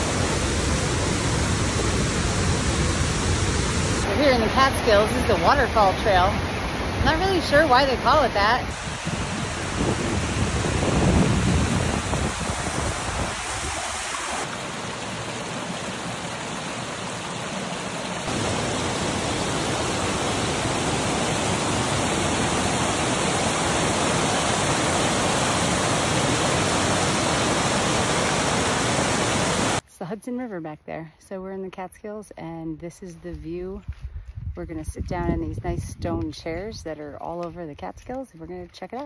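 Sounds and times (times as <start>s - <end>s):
stream rushing over rocks: 0.0s - 29.8s.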